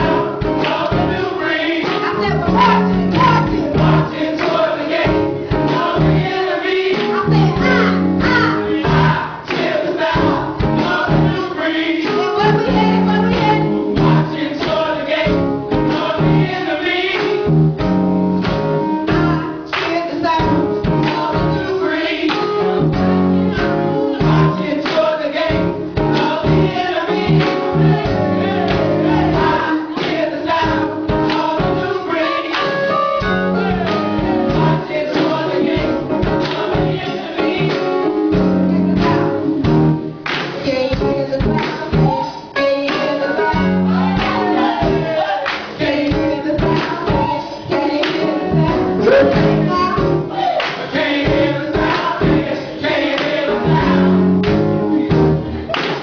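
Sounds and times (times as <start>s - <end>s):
group singing gospel music: 0.0s - 56.0s.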